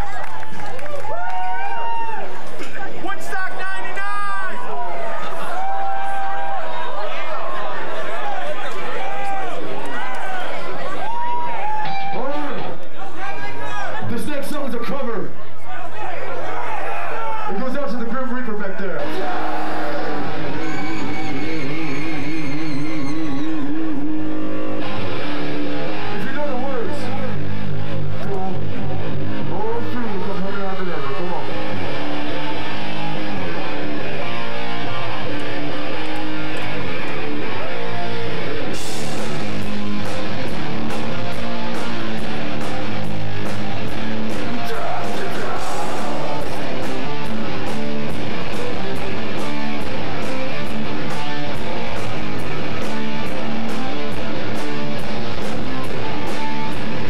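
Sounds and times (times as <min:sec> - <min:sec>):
distorted electric guitars: 0:00.0 - 0:15.3, 0:16.6 - 0:57.0
drums and cymbals: 0:38.7 - 0:56.9.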